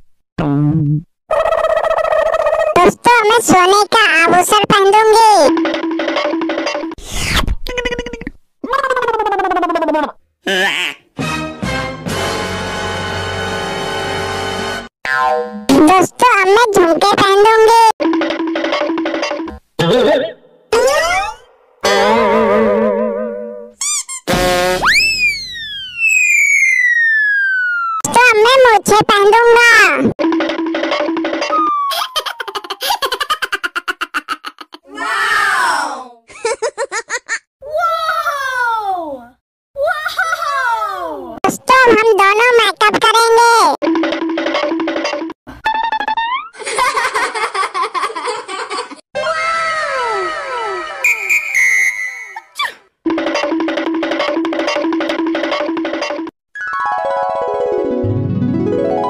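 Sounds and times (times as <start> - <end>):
swooping falling whistle: 24.8 - 28.0, 31.5 - 32.1, 51.0 - 52.8
warbling chirps: 24.8 - 28.0, 31.4 - 32.5, 51.0 - 52.7
high electronic beeps: 51.0 - 52.6.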